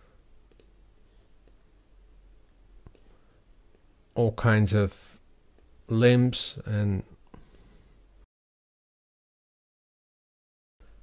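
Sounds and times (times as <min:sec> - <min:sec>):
faint mouse clicks: 0:00.5 - 0:00.8, 0:01.4 - 0:01.6, 0:02.8 - 0:03.1, 0:03.7 - 0:03.9.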